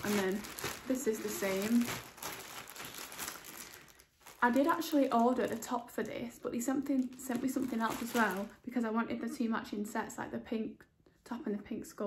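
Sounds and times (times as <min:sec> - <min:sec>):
garment rustling: 0:00.0 - 0:08.6.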